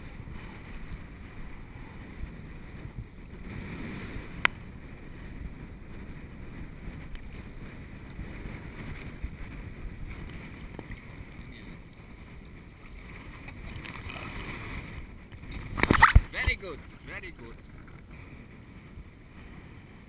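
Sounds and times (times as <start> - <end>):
wind noise on microphone: 0.0 - 20.0
small waves lapping: 10.0 - 18.0.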